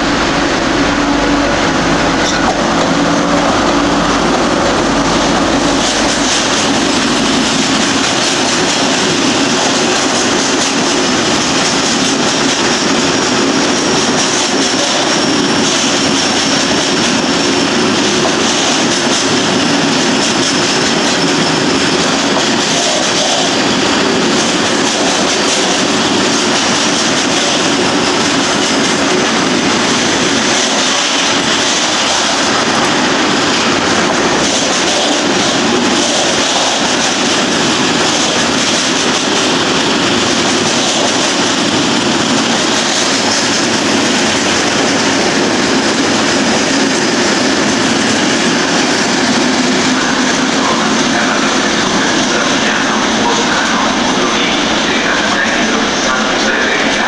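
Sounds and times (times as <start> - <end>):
freight train rolling: 0.0 - 57.0
steel wheels on rails: 0.0 - 57.0.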